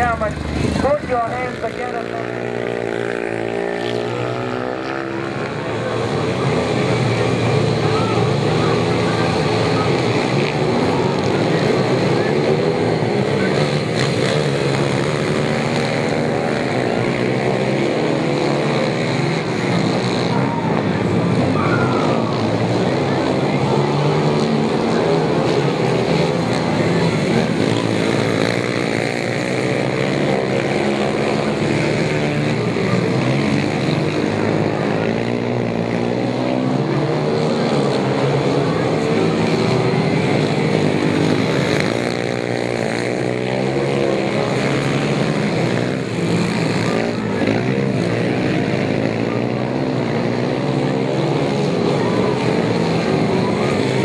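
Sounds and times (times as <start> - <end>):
motorcycles racing: 0.0 - 54.0.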